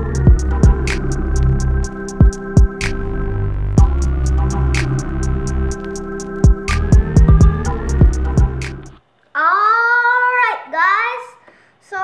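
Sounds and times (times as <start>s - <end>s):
child's gliding voice: 9.4s - 12.0s.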